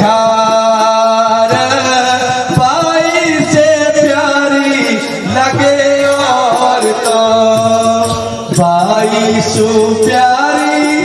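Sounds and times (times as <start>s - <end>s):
man singing through a pa: 0.0s - 11.0s.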